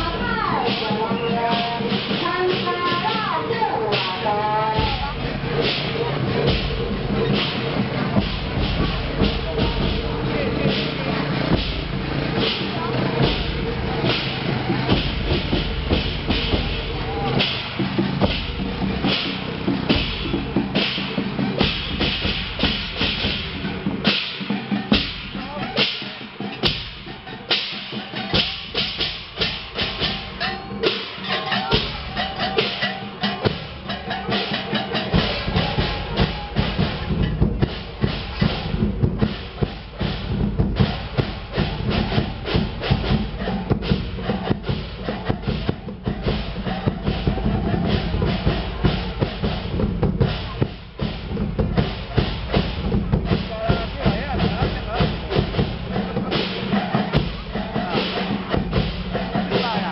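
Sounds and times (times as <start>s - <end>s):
firecrackers crackling: 0.0s - 46.8s
deep drum-like rumble: 0.0s - 59.9s
drums: 0.0s - 59.9s
hand cymbals clashing: 0.0s - 59.9s.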